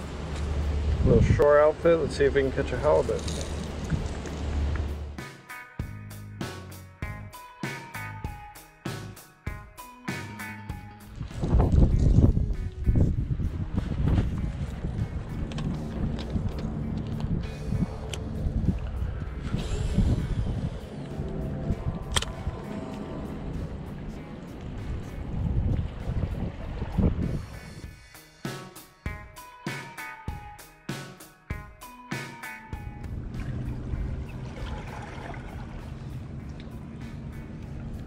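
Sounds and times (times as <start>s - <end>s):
wind buffeting microphone: 0.1s - 2.2s, 11.1s - 27.9s, 33.0s - 38.0s
background music: 0.6s - 38.0s.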